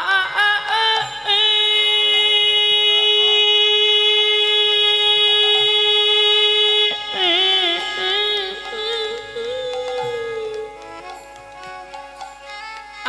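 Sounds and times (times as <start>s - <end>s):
man singing devotional song: 0.0s - 11.5s
sustained drone: 0.0s - 12.4s.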